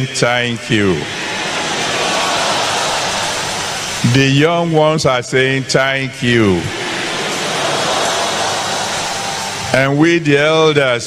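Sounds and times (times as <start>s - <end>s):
congregation applauding: 1.0s - 4.2s, 6.7s - 10.0s.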